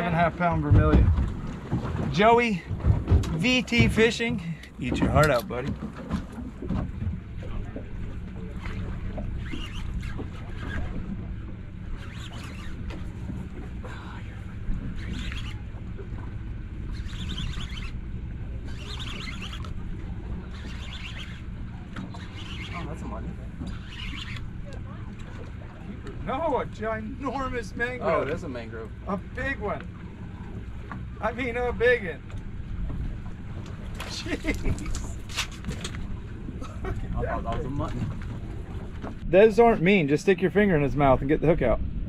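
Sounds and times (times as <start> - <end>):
outboard motor idling: 0.0 - 42.0
fishing reel whirring: 8.6 - 11.1, 11.8 - 13.2, 13.8 - 15.8, 16.7 - 24.9.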